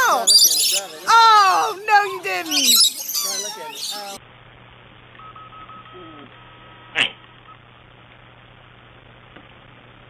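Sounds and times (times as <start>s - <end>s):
low steady hum: 4.1s - 10.0s.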